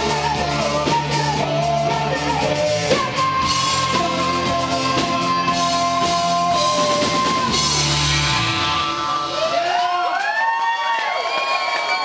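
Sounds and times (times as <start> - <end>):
sliding guitar tones: 0.0 - 9.6
live rock band playing: 0.0 - 10.2
crowd cheering: 7.0 - 12.0.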